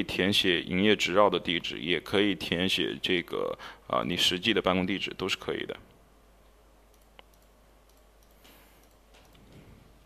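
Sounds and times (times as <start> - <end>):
computer mouse click: 6.9 - 9.6.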